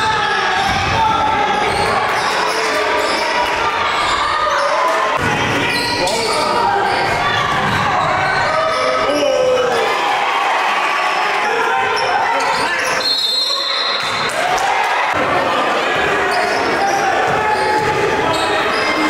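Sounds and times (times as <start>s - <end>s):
spectators' voices echoing: 0.0s - 19.0s.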